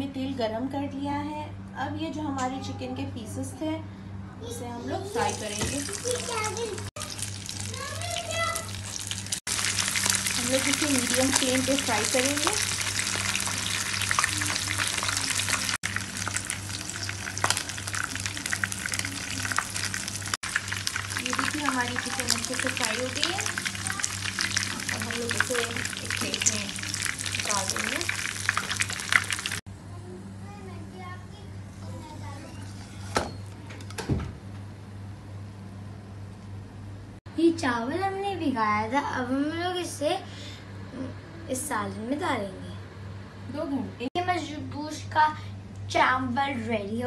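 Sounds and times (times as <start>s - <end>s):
chicken frying in oil: 5.2s - 29.6s.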